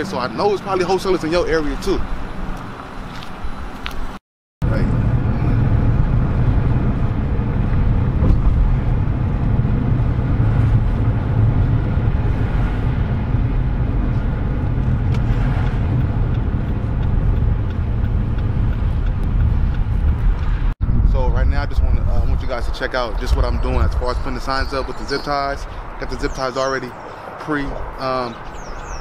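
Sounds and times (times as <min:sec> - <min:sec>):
tyre road noise: 0:00.0 - 0:29.0
car engine rumble: 0:00.2 - 0:29.0.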